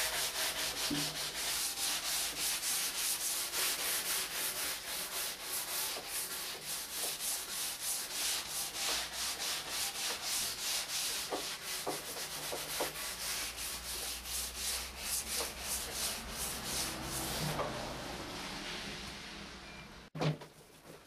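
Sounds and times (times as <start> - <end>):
sanding wood by hand: 0.0 - 17.7.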